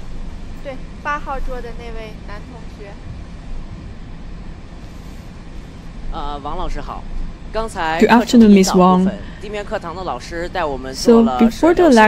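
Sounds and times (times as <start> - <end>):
low room noise rumble: 0.0 - 12.0.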